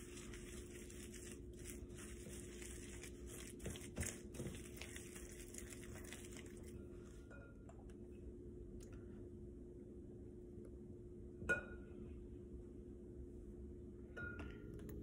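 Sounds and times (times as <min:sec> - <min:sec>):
whisk stirring in a bowl: 0:00.0 - 0:07.2
steady low hum: 0:00.0 - 0:15.0.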